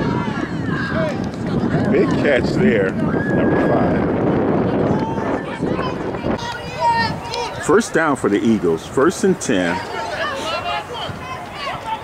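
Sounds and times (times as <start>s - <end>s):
spectators shouting: 0.0s - 8.1s, 9.3s - 12.0s.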